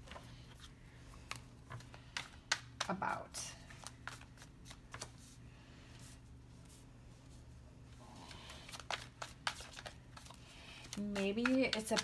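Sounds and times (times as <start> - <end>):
cards being shuffled: 3.7 - 5.3, 8.3 - 12.0.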